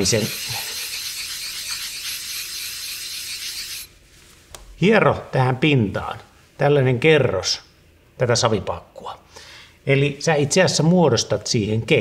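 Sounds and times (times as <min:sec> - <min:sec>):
stone scraping on whetstone: 0:00.0 - 0:03.9.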